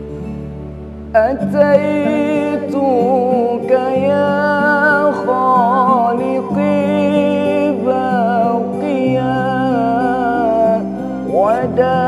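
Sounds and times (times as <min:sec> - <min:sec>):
person singing wavering notes: 0:01.1 - 0:12.0.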